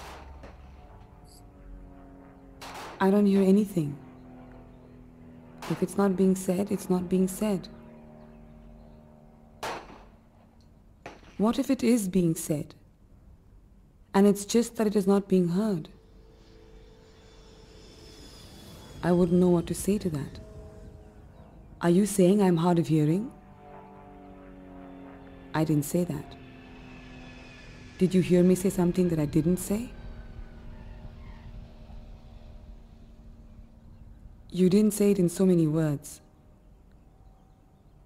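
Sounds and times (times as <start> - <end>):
faint background hum: 0.0 - 38.0.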